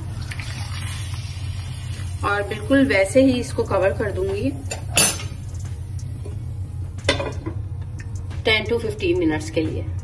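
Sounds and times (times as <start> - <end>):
metal pan clanking: 4.7 - 5.4.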